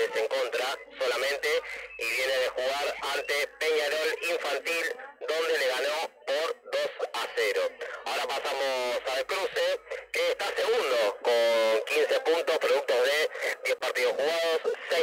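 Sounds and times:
man commentating: 0.0 - 15.0.

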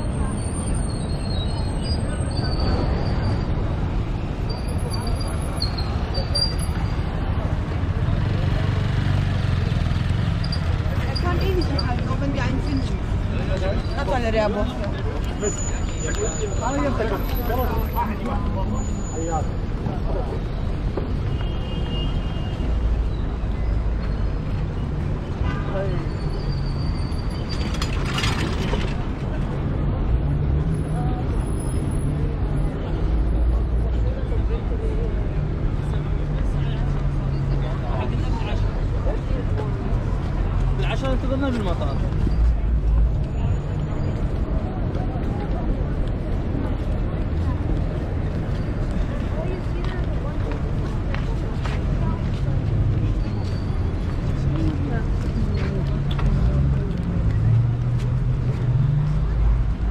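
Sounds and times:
indistinct chatter: 0.0 - 59.9
low street rumble: 0.0 - 59.9
passers-by talking: 0.0 - 59.9.

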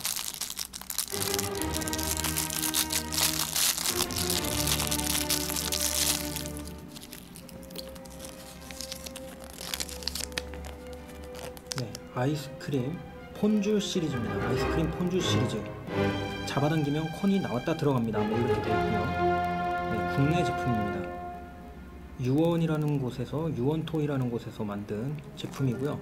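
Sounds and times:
plastic wrapper crinkling: 0.0 - 12.2, 22.2 - 24.0, 25.0 - 26.0
background music: 1.0 - 26.0.

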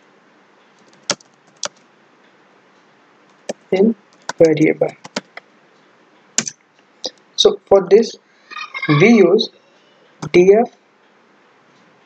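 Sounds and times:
low hiss: 0.0 - 12.0
keyboard typing: 0.8 - 1.8, 3.3 - 5.4, 6.4 - 6.6.

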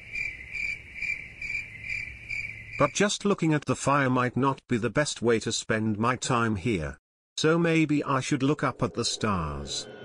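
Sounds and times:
crickets chirping: 0.0 - 3.0.

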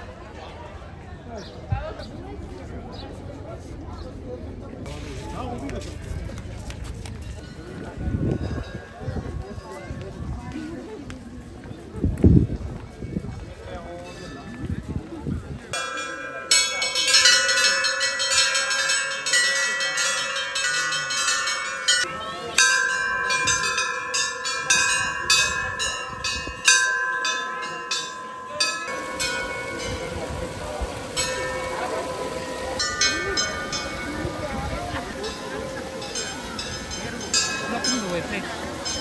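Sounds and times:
crowd chatter: 0.0 - 39.0
brass temple bells ringing: 15.7 - 39.0.

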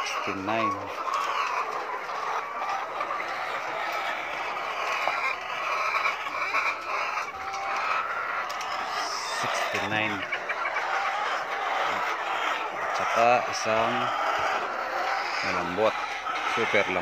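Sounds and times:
hens clucking: 0.0 - 17.0.

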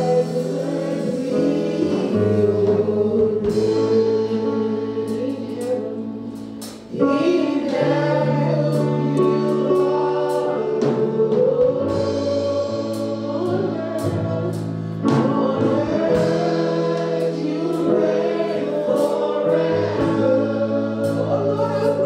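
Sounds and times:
steady percussion: 0.0 - 4.4
women singing gospel: 0.0 - 22.0.

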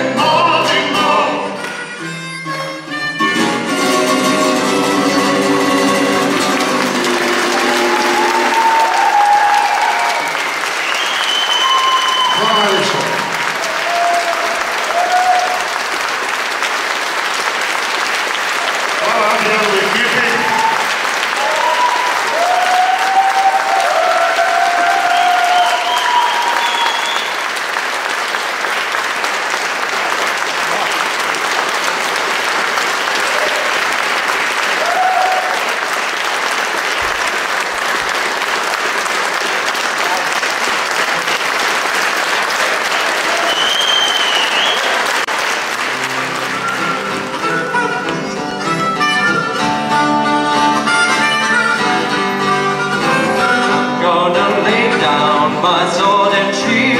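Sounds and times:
audience applauding: 3.5 - 53.5.

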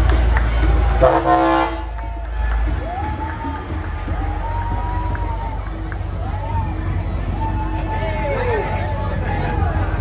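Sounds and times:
truck air horn blast: 1.0 - 2.0.

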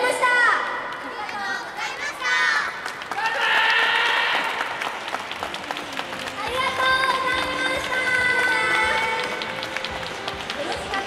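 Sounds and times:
audience applauding: 2.8 - 11.0.

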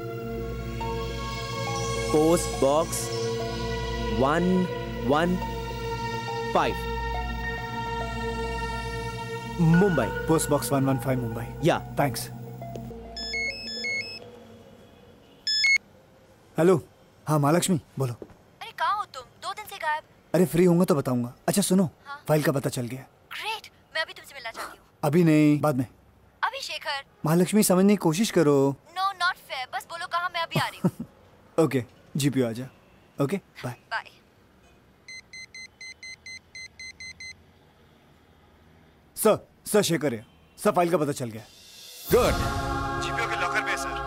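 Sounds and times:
mobile phone ringtone beeps: 13.1 - 14.2, 15.5 - 15.8, 35.1 - 37.4.

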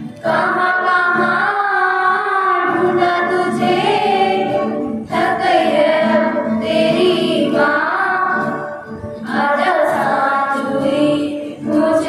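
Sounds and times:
children singing in unison: 0.0 - 12.0.

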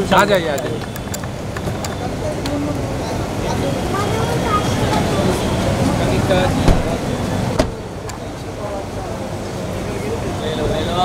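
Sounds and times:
car door thump: 6.6 - 7.9
sharp knock: 7.6 - 7.8.

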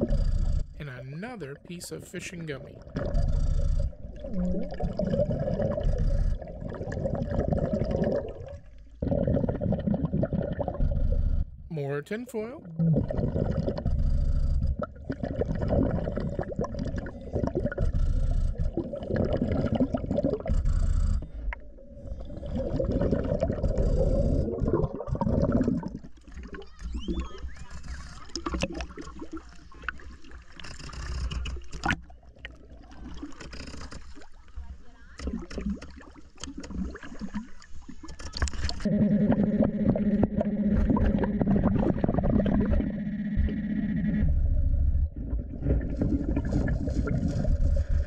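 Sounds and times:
diver breathing with bubbles: 0.0 - 0.8, 2.7 - 11.6, 12.7 - 26.6, 38.8 - 48.0
water splashing and lapping: 14.8 - 43.6, 45.2 - 48.0.

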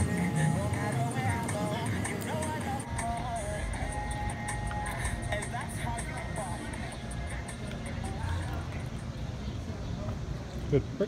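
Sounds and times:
background music: 0.0 - 8.9
road traffic rumble: 0.0 - 11.0
faint chatter: 4.8 - 11.0.

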